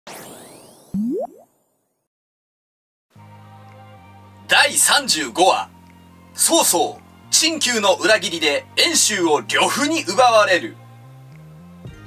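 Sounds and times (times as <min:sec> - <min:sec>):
springy cartoon boing: 0:01.0 - 0:01.5.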